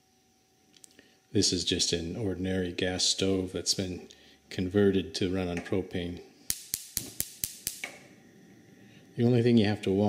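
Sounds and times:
gas burner igniter clicking: 6.5s - 8.1s.

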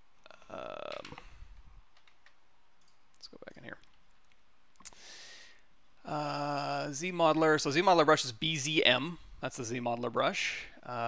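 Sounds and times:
person murmuring: 0.3s - 1.2s
computer mouse clicks: 2.0s - 3.2s.

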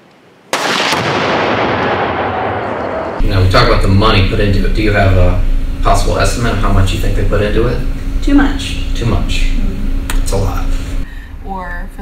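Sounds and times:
ground blast explosion: 0.5s - 3.2s.

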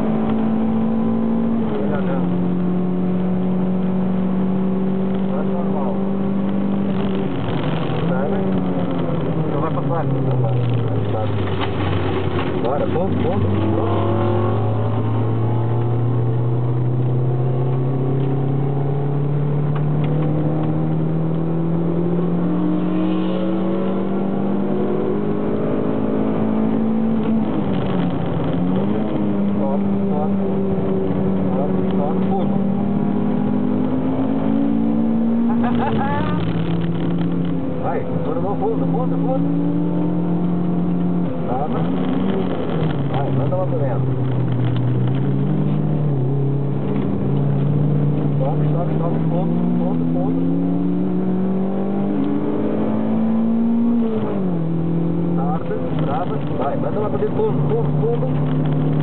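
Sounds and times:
car engine under load: 0.0s - 59.0s.

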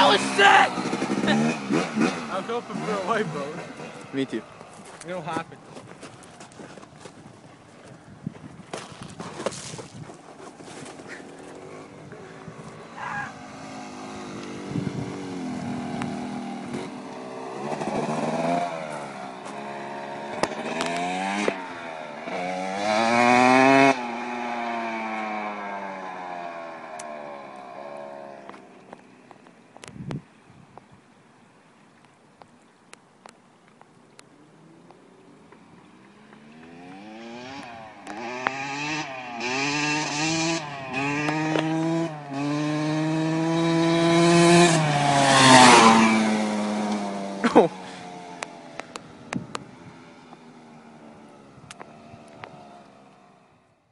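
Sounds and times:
dirt bike engine revving: 0.0s - 4.5s, 11.1s - 28.7s, 36.0s - 49.2s.

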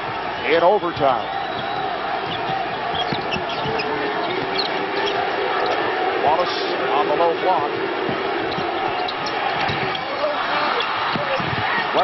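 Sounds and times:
arena crowd noise: 0.0s - 12.0s
sneaker squeaks on hardwood: 1.2s - 5.8s, 8.1s - 10.2s
basketball dribbling: 1.6s - 5.1s, 8.0s - 10.0s.

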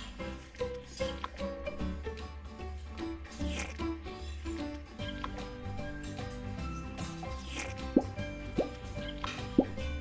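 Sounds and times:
background music: 0.0s - 10.0s
cartoon plop sound effects: 7.7s - 8.8s, 9.6s - 9.8s.

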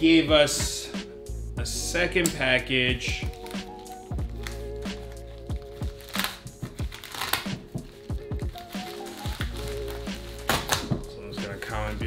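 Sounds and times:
background music with steady beat: 0.0s - 12.0s
plastic mailer crinkling: 3.3s - 11.0s.

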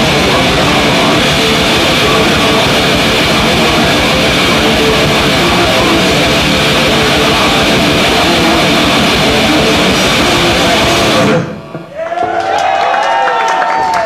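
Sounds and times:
death metal band playing live: 0.0s - 12.0s
ringing bending guitar tones: 0.0s - 12.0s
people shouting: 0.0s - 14.0s.

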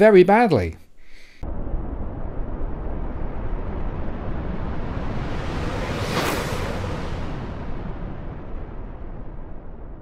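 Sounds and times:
deep cinematic rumble: 1.4s - 10.0s.

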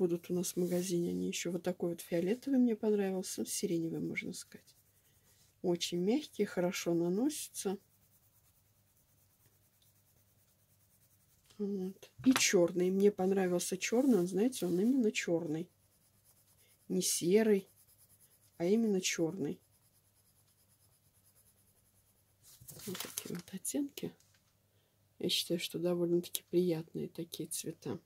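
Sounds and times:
pencil scratching on paper: 2.1s - 11.6s, 12.8s - 22.6s.

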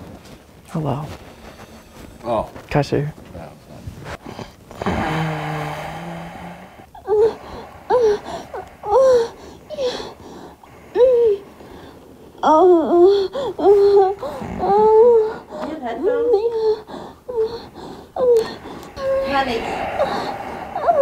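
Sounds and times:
high voice moaning through speaker: 18.2s - 21.0s.

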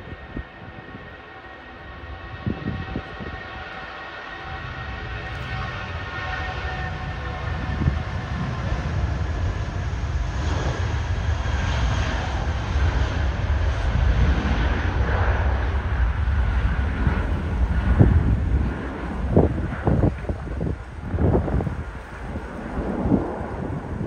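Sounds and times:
jet engines roaring at takeoff: 0.0s - 24.0s
wind buffeting microphone: 0.0s - 24.0s.

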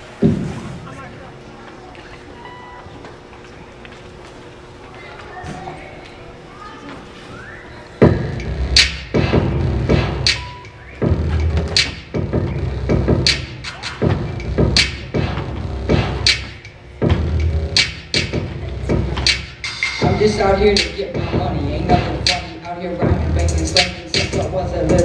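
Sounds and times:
hip-hop beat: 8.0s - 25.0s
kick drum thumps: 17.0s - 17.4s.

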